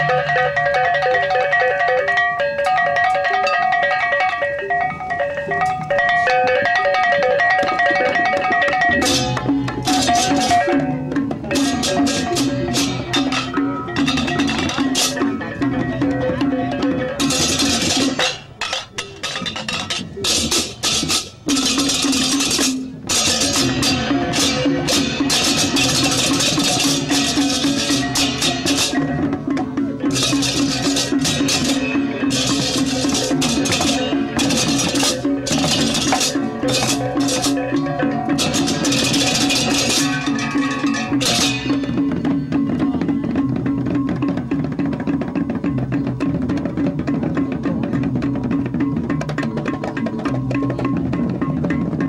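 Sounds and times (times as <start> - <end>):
hand-held gongs ringing: 0.0 - 43.5
cymbals clashing: 0.0 - 46.3
clatter of percussion strokes: 0.0 - 52.0
drums: 0.0 - 52.0.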